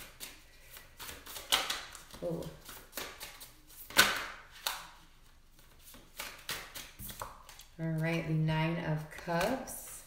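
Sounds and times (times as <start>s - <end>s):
card deck rustling: 0.0s - 8.3s.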